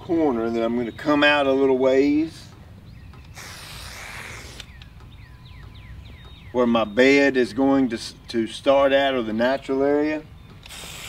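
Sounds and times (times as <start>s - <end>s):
spray paint can hissing: 3.4s - 4.7s, 10.6s - 11.0s.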